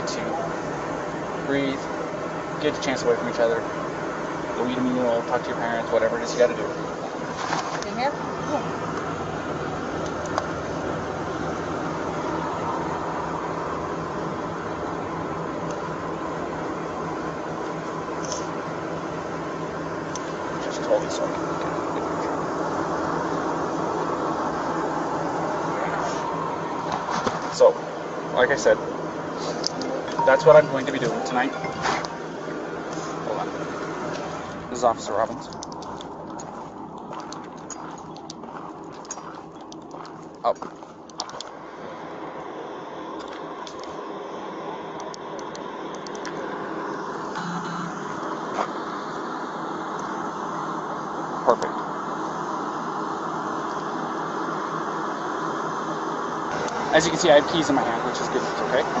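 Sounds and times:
car engine idling: 0:00.0 - 0:59.0
road noise: 0:00.0 - 0:59.0
footsteps on gravel: 0:35.8 - 0:41.4.

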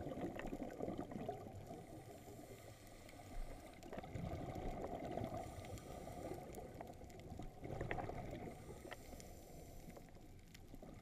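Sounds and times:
muffled underwater rumble: 0:00.0 - 0:11.0
light clicks underwater: 0:02.7 - 0:11.0.

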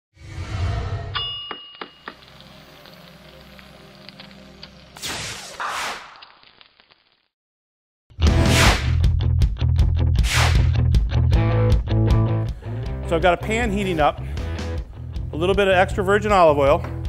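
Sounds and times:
whoosh: 0:00.2 - 0:01.2, 0:10.2 - 0:10.7
bright metallic ding: 0:01.2 - 0:02.2.

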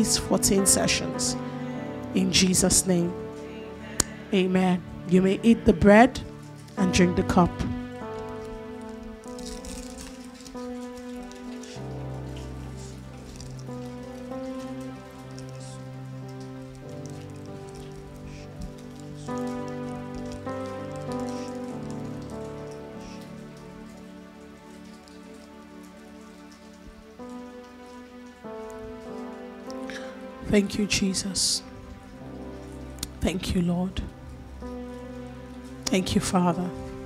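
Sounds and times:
soft music of sustained chords: 0:00.0 - 0:37.0.

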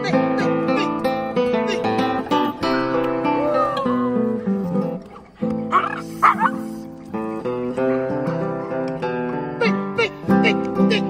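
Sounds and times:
acoustic guitar music: 0:00.0 - 0:11.0
dog barking: 0:05.0 - 0:06.7.

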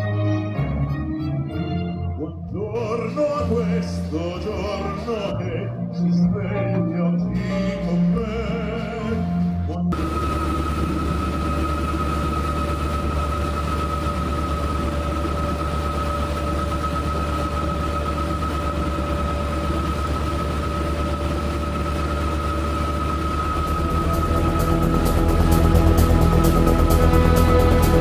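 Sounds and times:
motorboat engine humming: 0:09.9 - 0:28.0
music with regular beat: 0:23.7 - 0:28.0.

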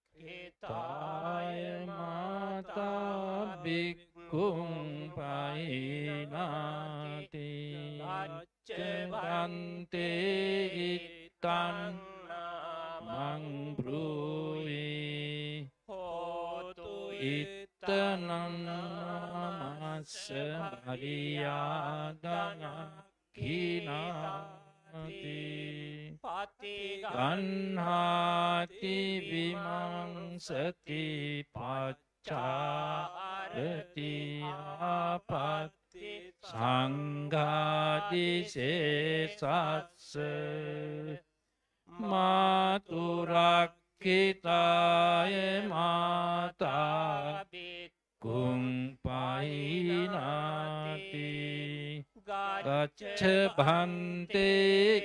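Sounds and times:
monks chanting through microphones: 0:00.3 - 0:41.2, 0:42.0 - 0:55.0.

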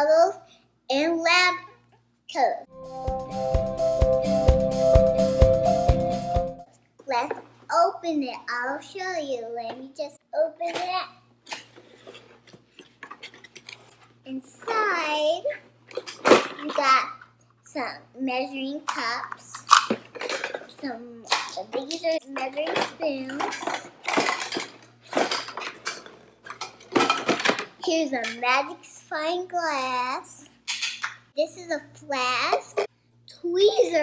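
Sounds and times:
plastic pieces clattering in a box: 0:19.6 - 0:20.7, 0:22.6 - 0:27.8.

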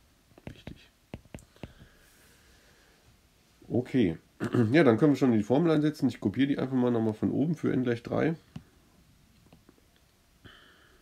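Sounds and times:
stylus tapping on glass screen: 0:00.4 - 0:01.9.

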